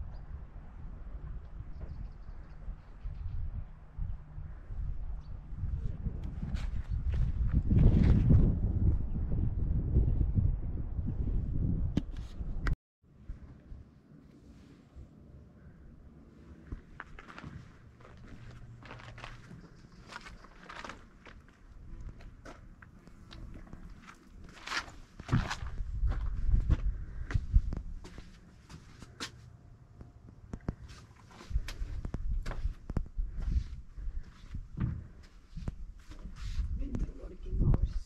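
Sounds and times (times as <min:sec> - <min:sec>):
footsteps on gravel and pavement: 0:16.6 - 0:29.4.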